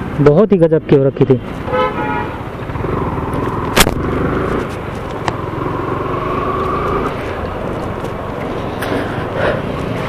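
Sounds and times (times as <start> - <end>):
motorcycle engine running: 2.6 - 8.8.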